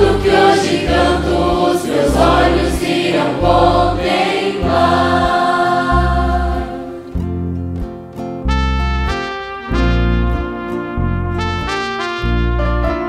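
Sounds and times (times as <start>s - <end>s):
choir singing a gospel hymn: 0.0s - 7.2s
instrumental backing with deep bass: 0.0s - 13.0s.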